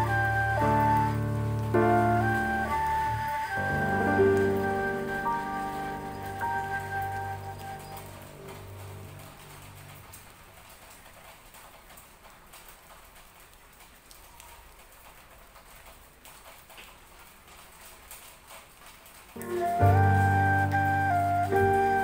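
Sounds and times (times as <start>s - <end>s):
soft music with held notes: 0.0s - 10.2s, 19.4s - 22.0s
raindrops dripping on leaves: 0.0s - 22.0s.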